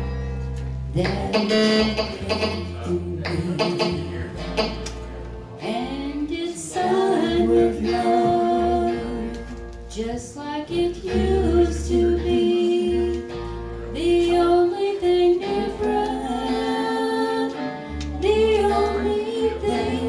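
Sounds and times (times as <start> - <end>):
bass line: 0.0 - 20.0
country band playing: 0.0 - 20.0
electric guitar: 0.0 - 20.0.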